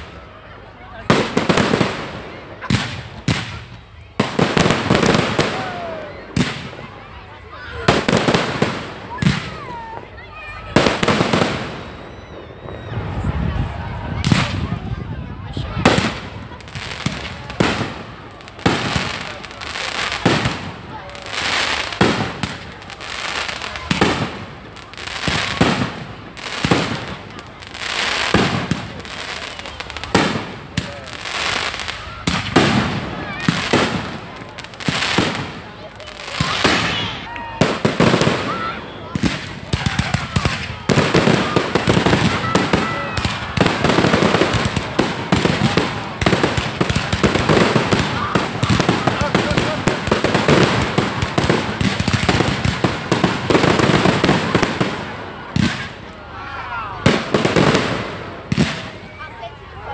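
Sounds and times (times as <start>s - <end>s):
fireworks bangs and crackle: 0.0s - 59.9s.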